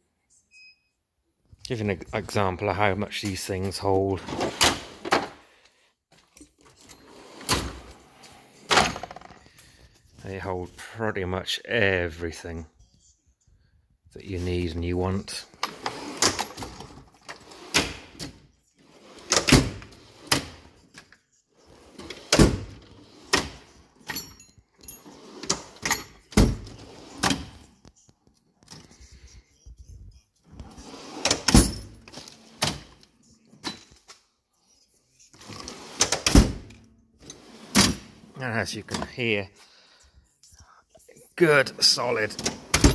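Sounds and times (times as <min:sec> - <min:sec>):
steel drawers sliding: 0:04.1 - 0:05.4, 0:06.6 - 0:09.3, 0:15.5 - 0:20.7, 0:21.7 - 0:24.3, 0:24.9 - 0:27.5, 0:30.6 - 0:33.0, 0:35.4 - 0:36.6, 0:37.2 - 0:39.1.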